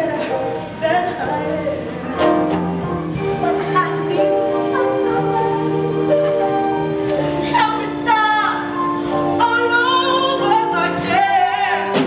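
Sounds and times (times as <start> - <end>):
woman singing with vibrato: 0.0 - 2.2, 3.3 - 6.5, 7.3 - 12.0
instrumental accompaniment: 0.0 - 12.0.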